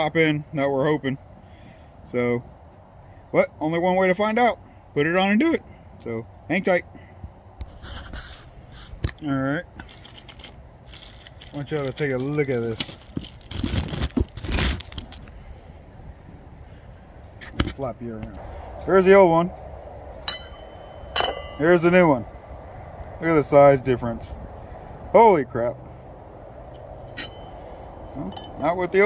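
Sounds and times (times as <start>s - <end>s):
low steady hum: 0.0s - 29.0s
rustling: 9.8s - 15.6s.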